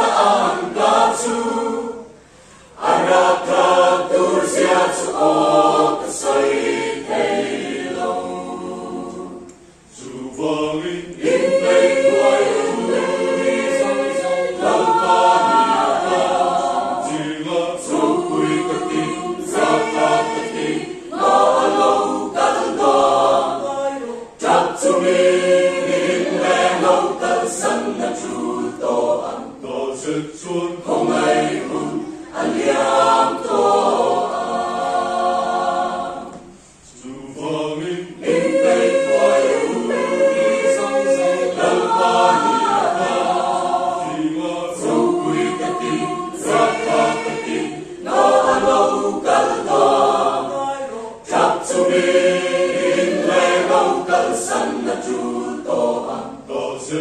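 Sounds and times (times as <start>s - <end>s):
mixed choir singing unaccompanied: 0.0s - 57.0s.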